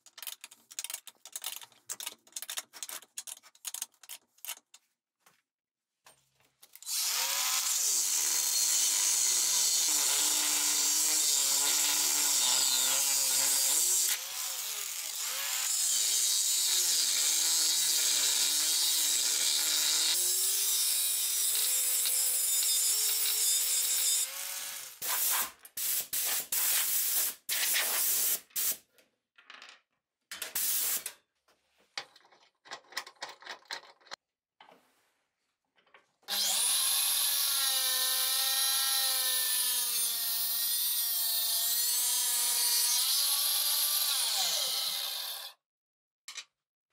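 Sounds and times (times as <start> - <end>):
angle grinder grinding metal: 6.8 - 25.4, 36.3 - 45.5.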